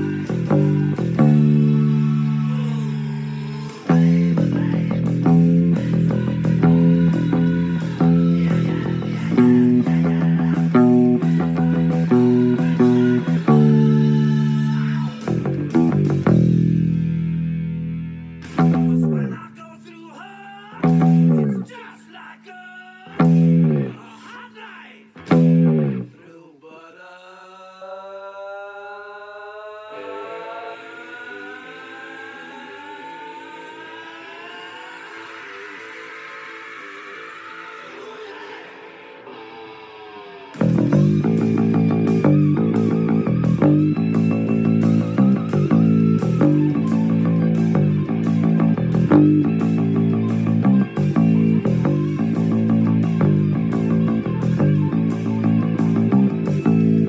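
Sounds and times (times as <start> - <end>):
hard rock band music: 0.0 - 19.4, 25.2 - 26.0, 39.2 - 57.0
electric bass: 0.0 - 19.5, 20.8 - 21.8, 23.1 - 24.0, 25.2 - 26.1, 40.6 - 57.0.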